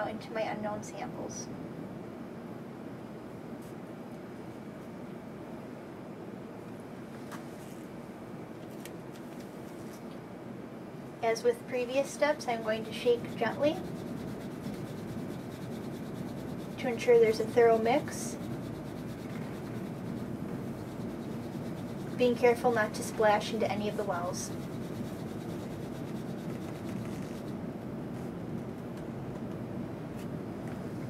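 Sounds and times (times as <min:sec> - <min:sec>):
steady low hum: 0:00.0 - 0:31.0
plastic scraping on cardboard: 0:17.4 - 0:27.5.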